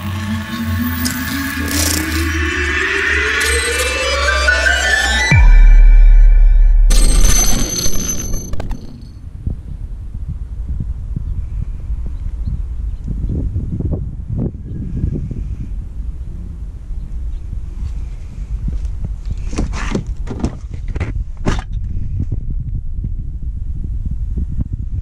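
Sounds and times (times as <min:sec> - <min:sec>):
electronic logo sting: 0:00.0 - 0:09.2
bright crash: 0:00.6 - 0:09.2
deep bass boom: 0:04.2 - 0:11.0
wind buffeting microphone: 0:09.2 - 0:25.0.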